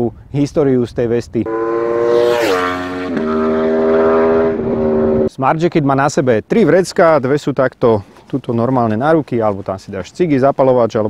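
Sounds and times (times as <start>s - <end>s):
motorcycle engine revving high: 1.5s - 5.3s.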